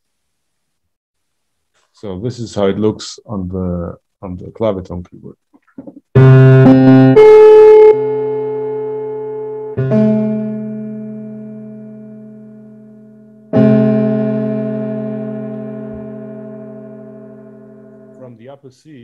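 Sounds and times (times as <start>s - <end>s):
keyboard chords ringing: 6.2s - 18.6s.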